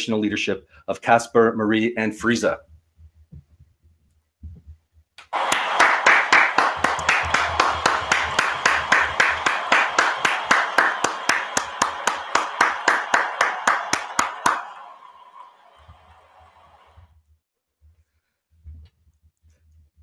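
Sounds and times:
person clapping hands: 5.2s - 15.1s.

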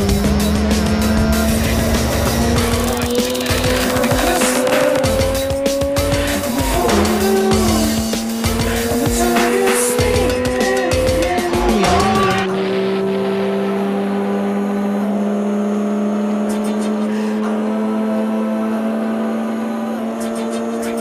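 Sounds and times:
music: 0.0s - 13.7s
rotary engine running hard: 0.0s - 21.0s.

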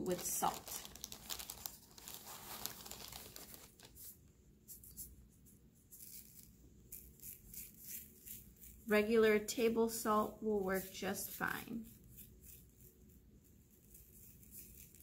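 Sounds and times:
plastic bag crinkling: 0.0s - 4.1s
salt grains pattering on paper: 0.0s - 4.1s, 13.8s - 15.0s.

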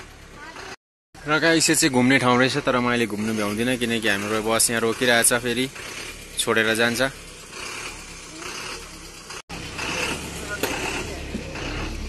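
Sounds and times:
bus engine running low: 0.0s - 12.0s.

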